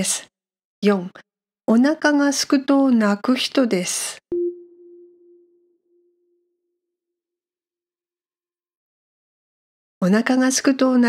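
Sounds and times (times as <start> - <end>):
low electronic chime tone: 4.3 - 6.5.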